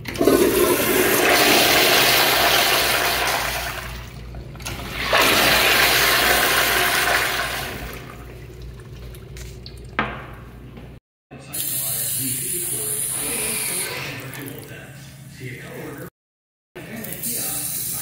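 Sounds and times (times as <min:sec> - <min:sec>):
toilet flushing: 0:00.0 - 0:10.4, 0:11.5 - 0:14.8.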